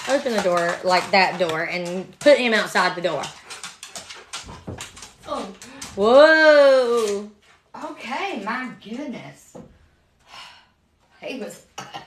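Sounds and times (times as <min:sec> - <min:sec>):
sharp knocks and scuffs: 0:00.0 - 0:06.1.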